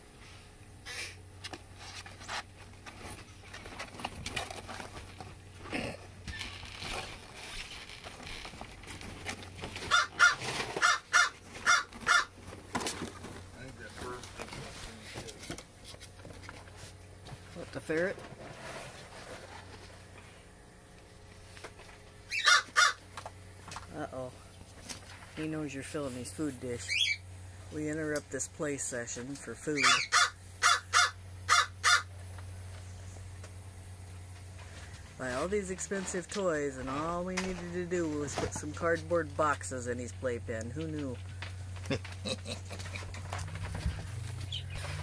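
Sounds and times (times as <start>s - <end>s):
person coughing: 5.7s - 6.1s
bird cawing harshly: 9.9s - 12.3s, 22.3s - 23.0s, 29.9s - 32.1s.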